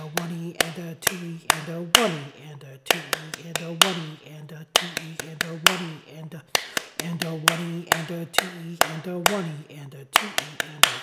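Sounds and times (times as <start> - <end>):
hand claps in march rhythm: 0.0 - 2.3, 2.9 - 9.6, 10.2 - 11.0
man counting aloud: 0.0 - 11.0.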